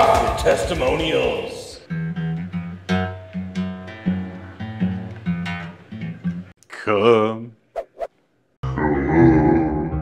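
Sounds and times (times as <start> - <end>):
man groaning: 8.6 - 10.0.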